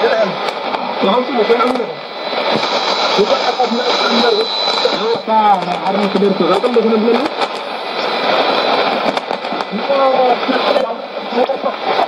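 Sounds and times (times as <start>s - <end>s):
radio static hiss: 0.0s - 12.0s
faint radio voice: 3.1s - 7.4s, 9.7s - 12.0s.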